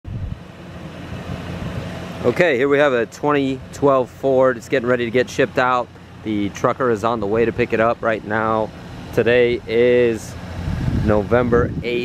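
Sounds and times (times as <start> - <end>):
wind on microphone: 0.0 - 0.5, 10.4 - 12.0
motor vehicle rumble: 0.0 - 12.0.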